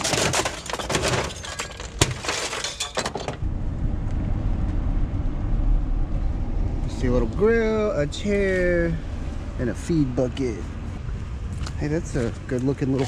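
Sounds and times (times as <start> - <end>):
junk clattering into truck bed: 0.0 - 3.4
truck engine rumbling: 0.0 - 13.0.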